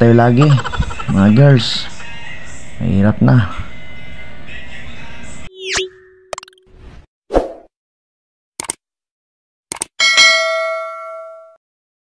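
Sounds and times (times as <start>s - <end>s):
notification bell ding: 10.0s - 11.6s.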